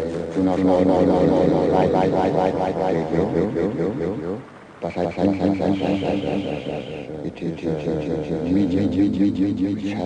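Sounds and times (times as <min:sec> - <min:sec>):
stuttering machine-like voice drone: 0:00.0 - 0:10.0.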